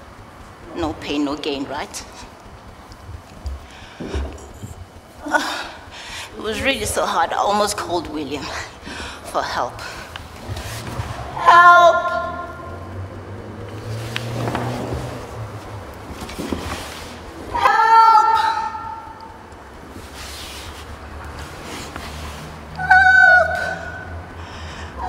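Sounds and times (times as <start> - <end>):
faint rustling: 1.7 - 11.4, 13.6 - 22.7.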